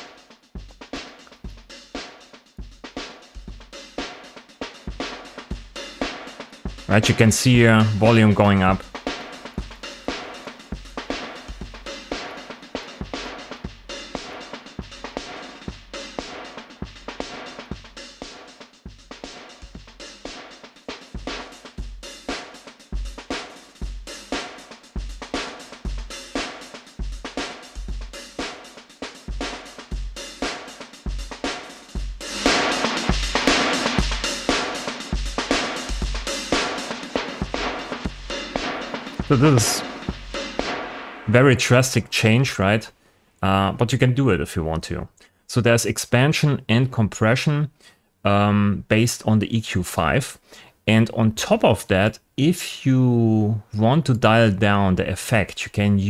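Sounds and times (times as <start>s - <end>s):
drum kit loop: 0.0s - 56.0s.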